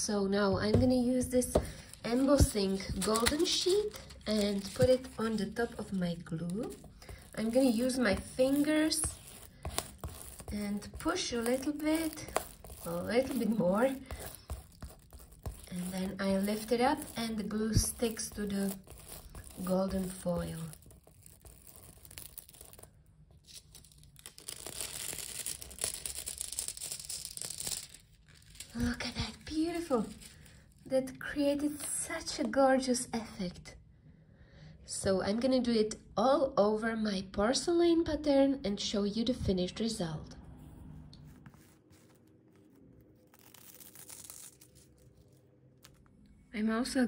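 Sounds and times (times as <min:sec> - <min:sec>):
foil crinkling and crackling: 0:01.6 - 0:30.6, 0:41.8 - 0:46.1.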